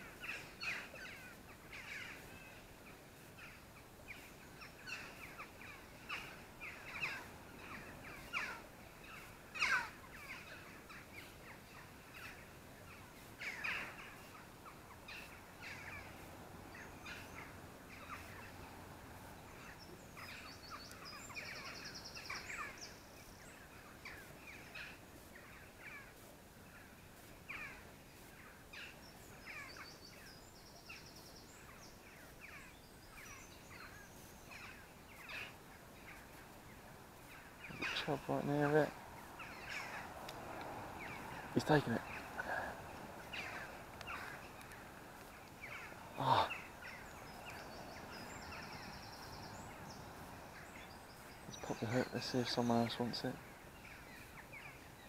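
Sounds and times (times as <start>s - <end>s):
birds calling: 0.0s - 55.0s.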